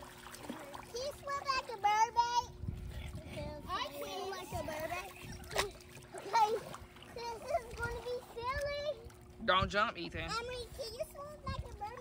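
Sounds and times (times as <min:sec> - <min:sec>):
faint steady hum: 0:00.0 - 0:12.0
water splashing in a pool: 0:00.0 - 0:12.0
children calling and chattering: 0:00.6 - 0:09.4, 0:10.3 - 0:12.0.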